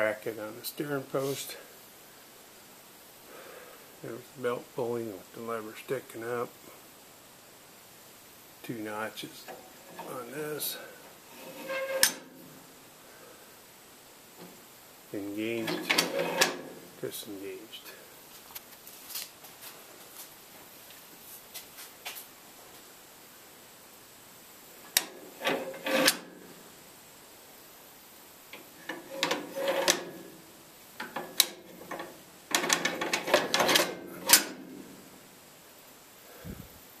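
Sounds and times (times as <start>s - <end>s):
metal clunking and scraping: 9.4s - 12.6s, 15.5s - 17.0s, 24.9s - 26.5s, 28.6s - 30.4s, 31.0s - 35.1s.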